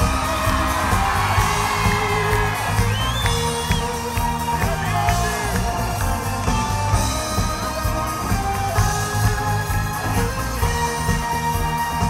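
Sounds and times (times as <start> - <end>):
crowd whooping: 0.0 - 12.0
live pop band music: 0.0 - 12.0
high gliding whistles: 2.7 - 4.1.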